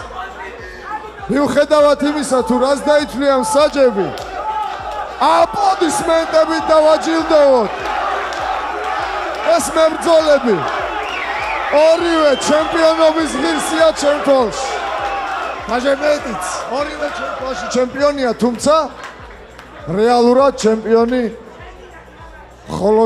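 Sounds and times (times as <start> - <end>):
man announcing through microphone: 0.0 - 4.2, 5.2 - 7.8, 9.4 - 10.7, 11.7 - 14.8, 15.6 - 19.0, 19.8 - 21.7, 22.6 - 23.0
crowd hubbub: 4.1 - 20.3.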